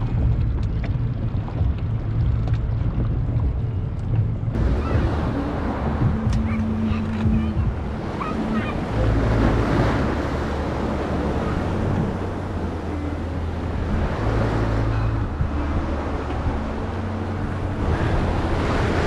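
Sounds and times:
low steady hum: 0:00.0 - 0:19.0
sea water washing around boat: 0:00.0 - 0:19.0
wind on microphone: 0:00.0 - 0:19.0.

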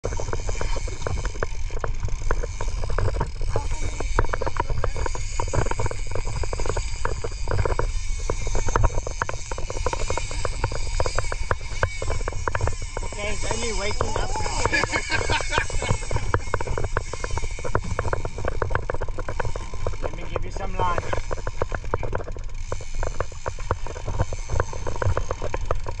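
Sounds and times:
fishing reel clicking: 0:00.0 - 0:26.0
wind and boat noise: 0:00.0 - 0:26.0.

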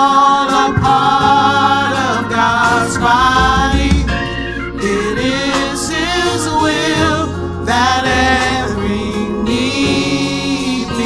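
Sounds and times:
group singing gospel song: 0:00.0 - 0:11.0
instrumental backing: 0:00.3 - 0:11.0.

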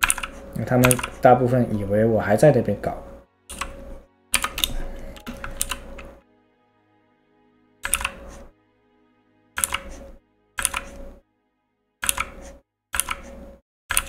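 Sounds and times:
computer keyboard keys clicking: 0:00.0 - 0:01.3, 0:03.5 - 0:03.8, 0:04.4 - 0:06.2, 0:07.8 - 0:08.4, 0:09.6 - 0:10.0, 0:10.6 - 0:11.0, 0:12.0 - 0:13.3
faint background music: 0:00.0 - 0:13.5.

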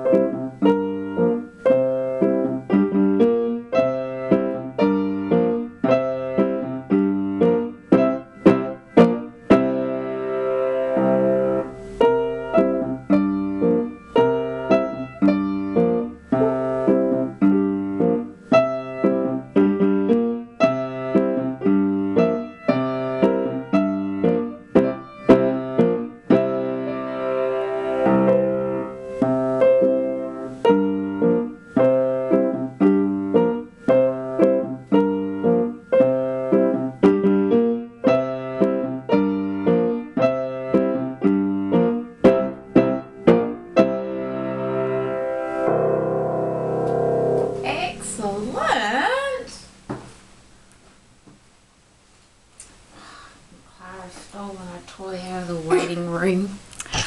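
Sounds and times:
piano duet: 0:00.0 - 0:49.8.

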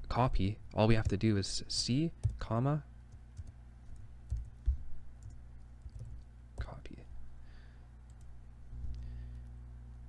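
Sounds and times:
low steady hum: 0:00.0 - 0:10.0
keyboard keystrokes: 0:02.2 - 0:02.4, 0:03.4 - 0:06.8.

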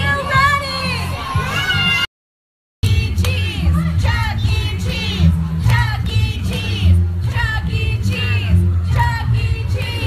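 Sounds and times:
children shouting and cheering: 0:00.0 - 0:02.1
loud music with heavy bass: 0:02.8 - 0:10.0.

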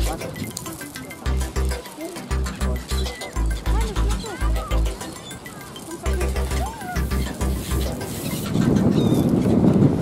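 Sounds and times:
thin high chirp: 0:00.3 - 0:09.5
wind buffeting microphone: 0:02.6 - 0:10.0.

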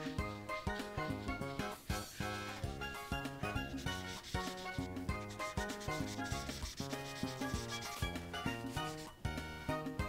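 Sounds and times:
marker rubbing on paper: 0:00.0 - 0:09.2
background music with steady beat: 0:00.0 - 0:10.0.

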